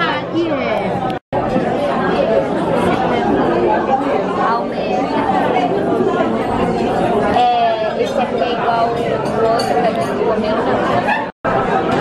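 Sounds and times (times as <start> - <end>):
people talking in restaurant: 0.0 - 12.0.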